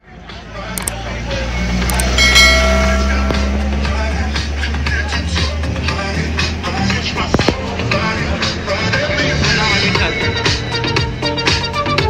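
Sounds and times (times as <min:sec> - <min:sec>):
mouse click: 0:01.9 - 0:02.2
bell chime: 0:01.9 - 0:05.2.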